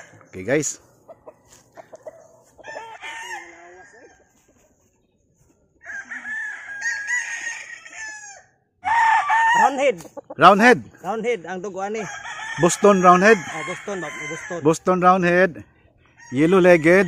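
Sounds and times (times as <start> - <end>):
roosters crowing: 0.0 - 4.5, 5.8 - 15.3, 16.1 - 17.0.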